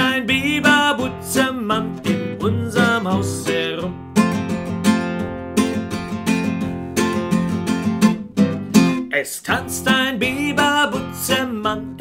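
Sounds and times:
classical guitar strummed chords: 0:00.0 - 0:12.0.

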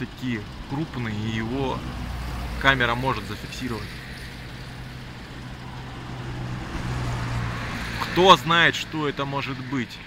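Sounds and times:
distant road traffic: 0:00.0 - 0:10.0.

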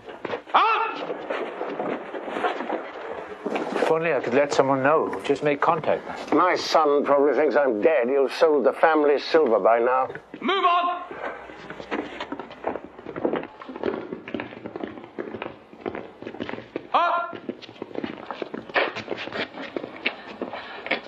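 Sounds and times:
footsteps on stone floor: 0:00.0 - 0:21.0.

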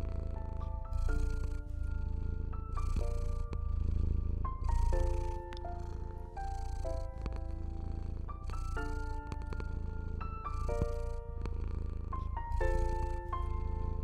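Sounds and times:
cat purring: 0:00.0 - 0:14.0
soft slow piano music: 0:00.0 - 0:14.0.

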